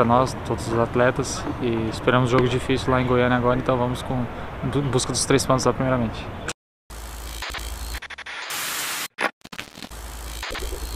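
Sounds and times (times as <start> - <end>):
static crackle: 7.0 - 10.9.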